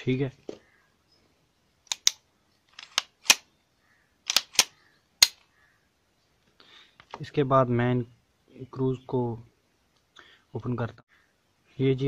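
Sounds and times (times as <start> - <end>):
pistol slide metallic clicks: 1.9 - 2.2, 2.8 - 3.5, 4.3 - 5.5.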